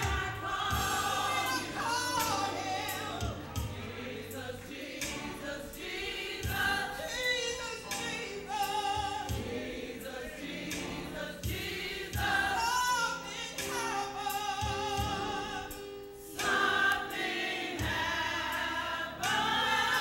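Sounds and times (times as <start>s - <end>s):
low beat thumps: 0.0s - 7.0s, 8.8s - 12.8s
gospel choir singing: 0.0s - 20.0s.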